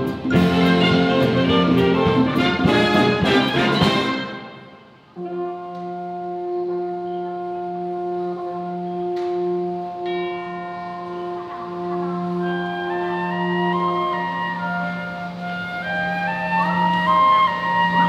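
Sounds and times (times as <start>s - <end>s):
percussion strikes: 0.0s - 6.3s, 8.6s - 18.0s
concert wind band playing: 0.0s - 18.0s
sustained brass chords: 0.0s - 18.0s.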